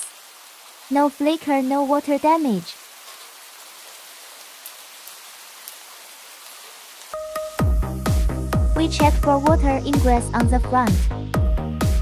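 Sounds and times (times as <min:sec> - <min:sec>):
falling water hiss: 0:00.0 - 0:07.6.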